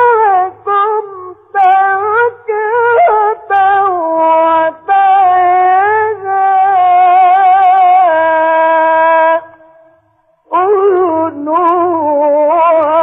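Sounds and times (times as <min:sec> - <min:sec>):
person chanting recitation: 0:00.0 - 0:13.0.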